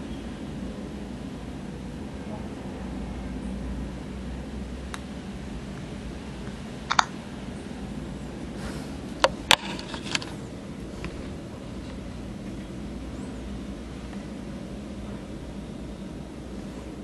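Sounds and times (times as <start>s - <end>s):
steady low hum and hiss: 0.0s - 17.0s
sharp clicks: 6.9s - 7.1s.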